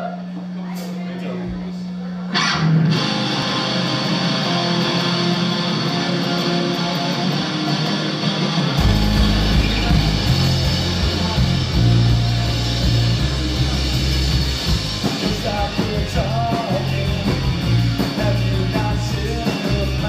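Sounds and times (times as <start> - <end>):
electric guitars: 2.3 - 20.0
bass and drums: 2.4 - 20.0.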